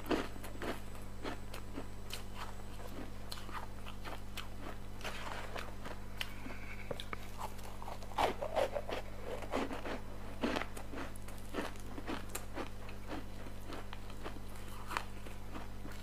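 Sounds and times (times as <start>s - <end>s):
ice crunching being chewed: 0.0s - 16.0s.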